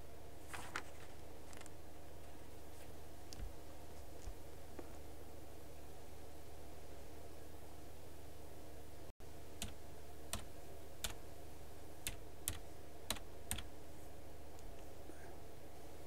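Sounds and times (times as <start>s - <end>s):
electrical hum: 0.0s - 16.0s
keyboard key clicks: 9.6s - 11.2s, 12.1s - 13.7s.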